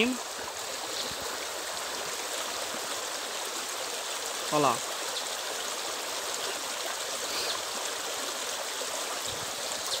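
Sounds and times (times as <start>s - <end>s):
stream flowing over rocks: 0.0s - 10.0s.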